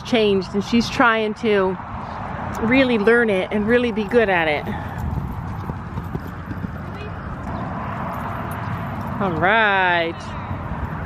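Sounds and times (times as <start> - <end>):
horse hoofbeats on sand: 4.1 - 9.7.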